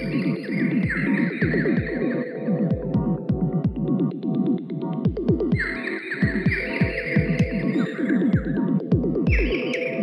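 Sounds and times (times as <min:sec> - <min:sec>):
kick drums: 0:00.0 - 0:09.7.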